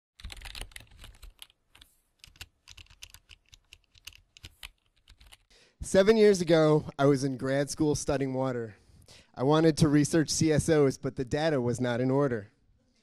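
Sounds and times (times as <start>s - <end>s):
quick irregular clicks and taps: 0.2s - 5.5s.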